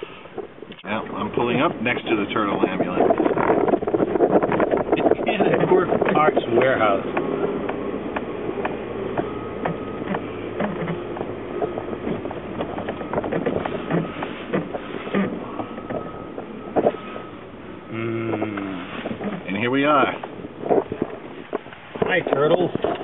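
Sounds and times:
car engine and road noise: 0:00.0 - 0:23.0
small clicks and rattles: 0:02.0 - 0:17.0.

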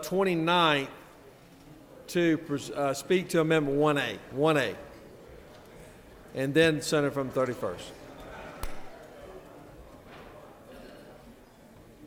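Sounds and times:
large room background noise: 0:00.0 - 0:12.0.

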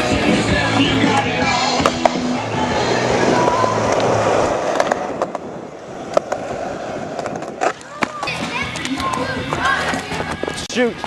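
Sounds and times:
skateboard wheels rolling on asphalt: 0:00.0 - 0:11.0
skateboard clacks: 0:00.2 - 0:02.3, 0:03.8 - 0:10.6.

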